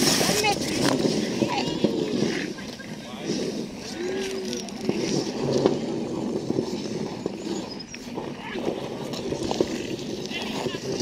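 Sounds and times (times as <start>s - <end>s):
ice skates scraping on ice: 0.0s - 11.0s.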